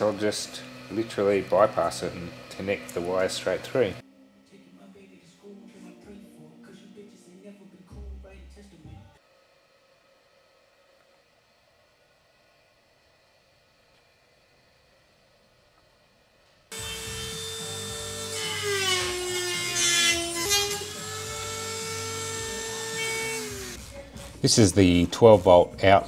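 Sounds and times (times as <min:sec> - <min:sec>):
rotary tool whining: 0:00.0 - 0:04.0, 0:16.7 - 0:26.0.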